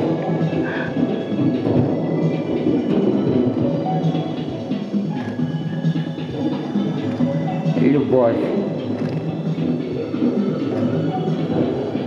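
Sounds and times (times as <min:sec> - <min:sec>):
electronic keyboard playing: 0:00.0 - 0:12.0.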